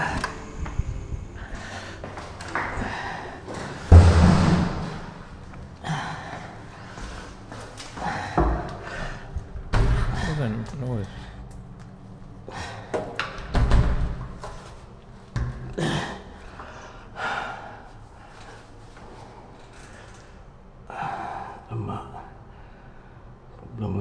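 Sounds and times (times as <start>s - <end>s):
heavy thuds like doors slamming: 3.9s - 5.5s.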